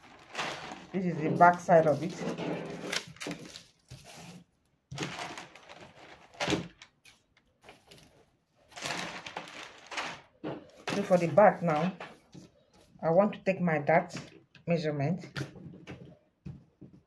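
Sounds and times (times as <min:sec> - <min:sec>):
paper rustling and crinkling: 0:00.0 - 0:13.0.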